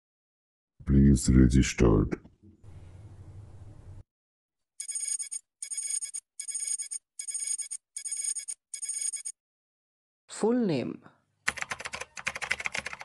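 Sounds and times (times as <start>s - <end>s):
high electronic ringing tone: 4.8s - 9.4s.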